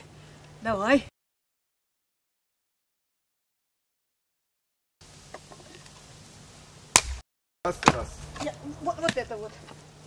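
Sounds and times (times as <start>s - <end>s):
faint outdoor background: 0.0s - 1.1s, 5.0s - 10.0s
axe chopping a log: 6.9s - 9.3s.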